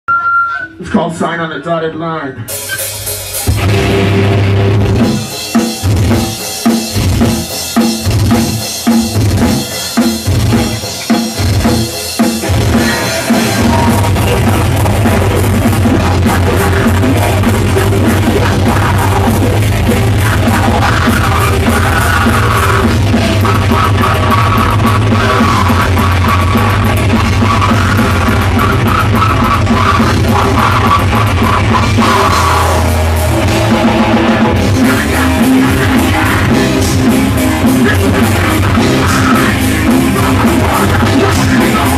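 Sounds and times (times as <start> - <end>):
live heavy metal band: 2.4 - 41.9
pounding drums: 2.5 - 41.9.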